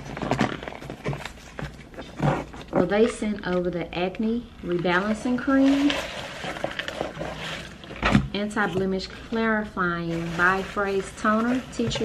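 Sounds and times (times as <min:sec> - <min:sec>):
packaging rustling and clattering: 0:00.0 - 0:03.7, 0:04.7 - 0:12.0
woman speaking: 0:02.8 - 0:06.1, 0:08.3 - 0:12.0.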